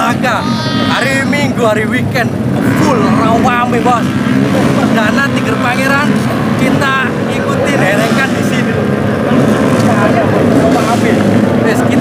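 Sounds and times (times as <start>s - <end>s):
man talking: 0.0s - 8.8s, 9.8s - 12.0s.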